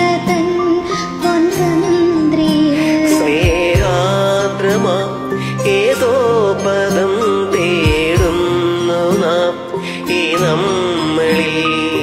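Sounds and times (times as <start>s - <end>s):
person singing ornamented melody: 0.0s - 12.0s.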